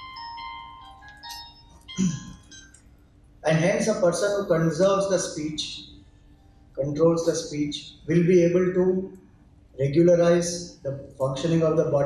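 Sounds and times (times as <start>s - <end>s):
phone ringtone jingle: 0.0s - 2.8s.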